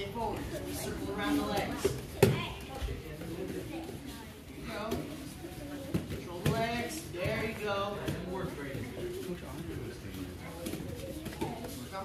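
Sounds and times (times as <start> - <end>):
coach talking: 0.0 - 5.4, 6.0 - 10.9
indistinct voices of children: 0.2 - 6.4, 10.4 - 12.0.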